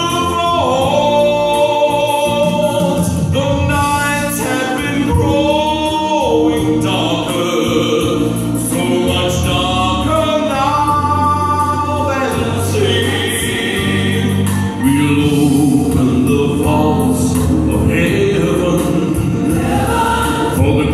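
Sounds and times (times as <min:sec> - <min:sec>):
instrumental accompaniment: 0:00.0 - 0:20.9
man singing into a microphone: 0:00.0 - 0:20.9.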